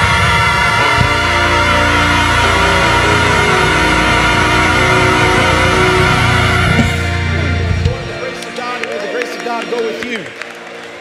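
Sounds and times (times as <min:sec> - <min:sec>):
church choir singing: 0:00.0 - 0:11.0
instrumental accompaniment: 0:00.4 - 0:11.0.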